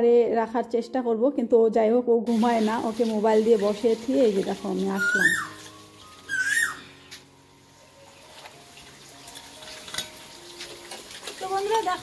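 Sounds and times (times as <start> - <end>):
bird whistled call: 5.0 - 5.6, 6.2 - 6.9.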